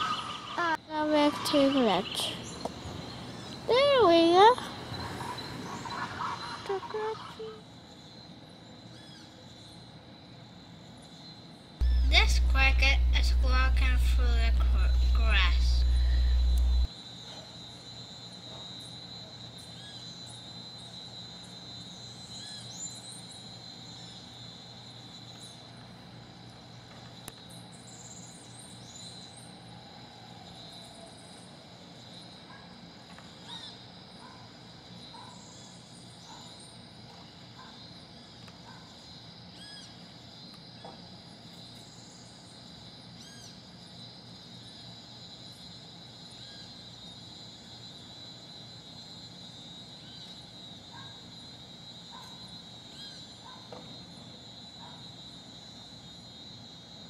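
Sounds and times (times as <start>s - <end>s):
high-pitched insect trill: 0.0s - 57.0s
low steady hum: 11.8s - 16.9s.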